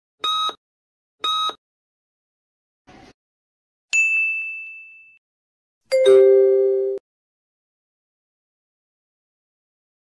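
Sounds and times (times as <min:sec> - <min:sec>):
electronic countdown beep: 0:00.2 - 0:00.6, 0:01.2 - 0:01.6
bright chime: 0:05.9 - 0:07.0.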